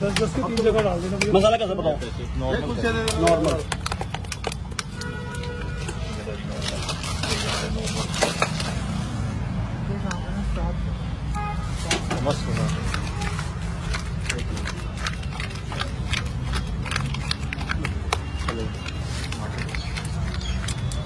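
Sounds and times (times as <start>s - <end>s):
low street rumble: 0.0s - 21.0s.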